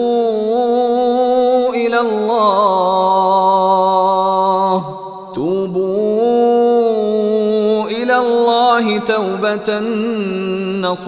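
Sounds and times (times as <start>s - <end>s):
man chanting recitation: 0.0s - 11.0s.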